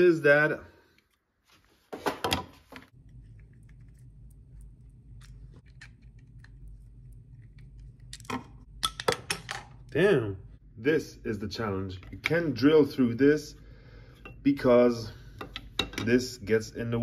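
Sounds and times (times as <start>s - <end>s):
steady low hum: 2.9s - 9.0s, 9.6s - 17.0s.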